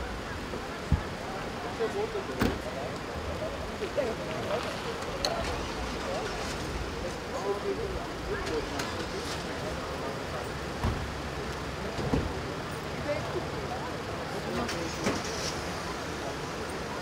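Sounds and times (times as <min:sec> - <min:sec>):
murmur of voices: 0:00.0 - 0:17.0.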